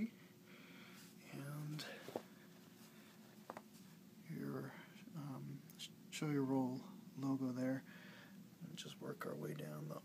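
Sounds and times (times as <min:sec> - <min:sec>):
fabric handling noise: 0:01.0 - 0:04.0.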